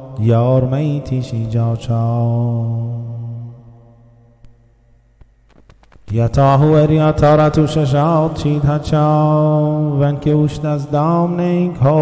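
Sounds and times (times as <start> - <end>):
man chanting a prayer: 0.0 - 3.7, 6.1 - 12.0.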